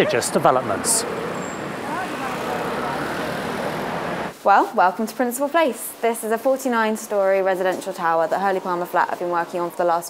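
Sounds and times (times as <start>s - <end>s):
faint voices: 0.0s - 3.8s
city road traffic: 0.0s - 4.4s.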